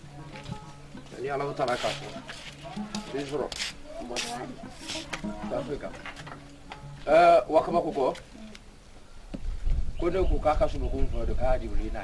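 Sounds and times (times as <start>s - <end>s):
person speaking: 1.0s - 6.0s.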